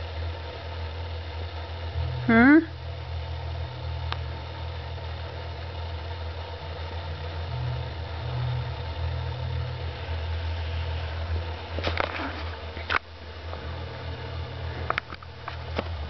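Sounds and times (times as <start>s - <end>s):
steady low hum: 0.0s - 16.0s.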